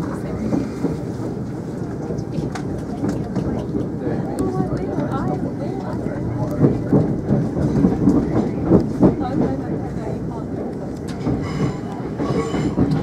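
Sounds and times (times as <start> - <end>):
train rumbling: 0.0 - 13.0.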